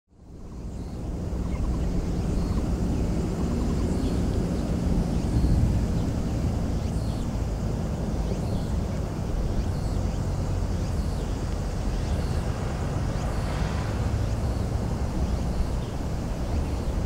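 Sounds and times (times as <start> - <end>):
steady low rumble: 0.2 - 17.0.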